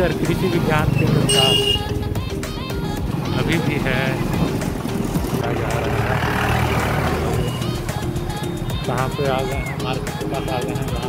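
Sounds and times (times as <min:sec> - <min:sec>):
motorcycle engine running: 0:00.0 - 0:08.4
road noise: 0:00.0 - 0:11.0.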